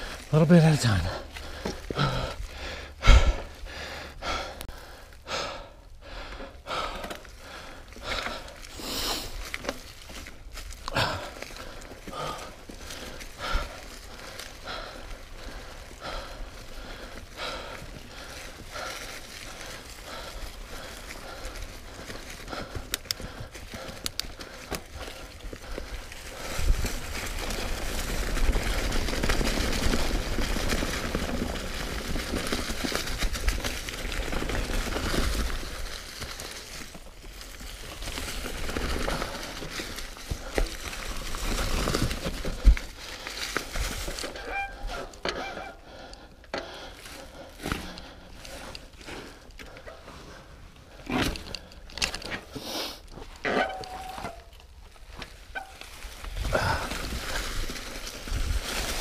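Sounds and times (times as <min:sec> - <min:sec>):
bike tyres crunching through leaves: 0:00.0 - 0:59.0
bike rattling over ground: 0:06.2 - 0:59.0.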